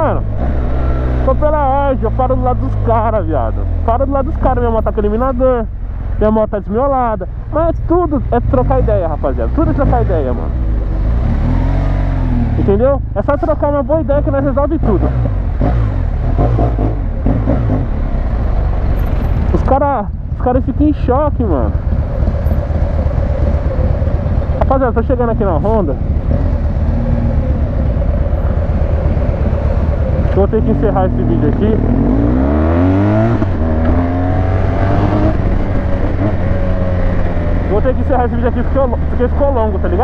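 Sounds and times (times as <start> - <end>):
motorcycle engine running: 0.0 - 40.0.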